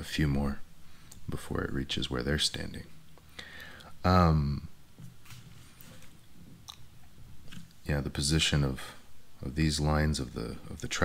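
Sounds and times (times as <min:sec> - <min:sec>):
mouth clicks and smacks: 0:06.6 - 0:07.8.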